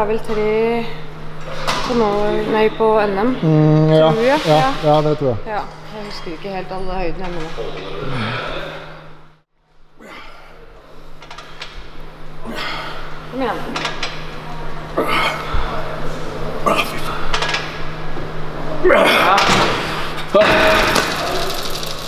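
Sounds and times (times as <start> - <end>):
steady low hum: 0.0 - 22.0
man breathing hard and straining: 8.0 - 9.2.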